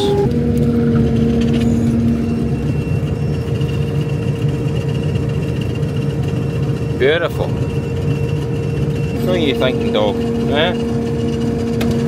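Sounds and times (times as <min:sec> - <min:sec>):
combine harvester engine drone: 0:00.0 - 0:12.0
low hum: 0:00.0 - 0:12.0.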